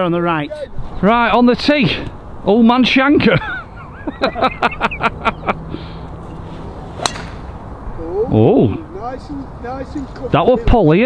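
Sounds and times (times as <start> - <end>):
people laughing: 3.2 - 5.8
golf club striking ball: 6.9 - 7.7.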